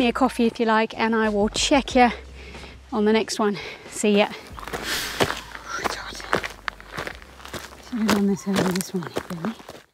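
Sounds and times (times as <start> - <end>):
footsteps on gravel: 4.1 - 9.9.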